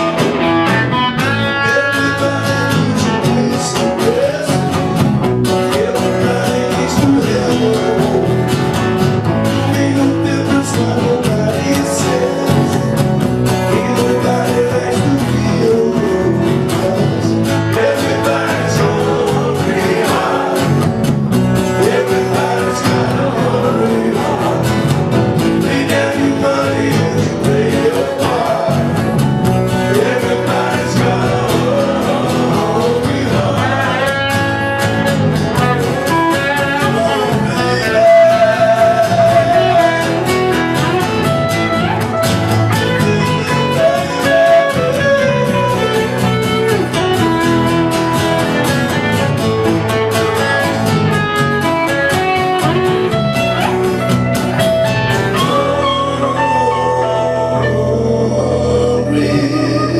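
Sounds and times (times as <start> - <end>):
man singing: 0.0 - 41.9, 42.6 - 49.0, 54.8 - 59.9
bass guitar: 0.0 - 59.9
electric guitar: 0.0 - 59.9
strummed acoustic guitar: 0.0 - 59.9.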